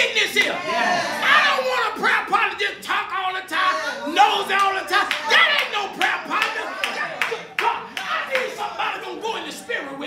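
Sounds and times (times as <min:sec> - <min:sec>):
raised voices: 0:00.0 - 0:02.3, 0:03.2 - 0:10.0
rhythmic hand clapping: 0:04.4 - 0:08.8.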